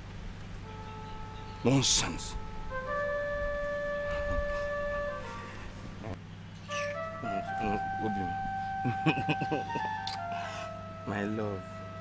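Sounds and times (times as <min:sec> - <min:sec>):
slow film music melody: 0:00.0 - 0:12.0
man murmuring: 0:06.0 - 0:08.3.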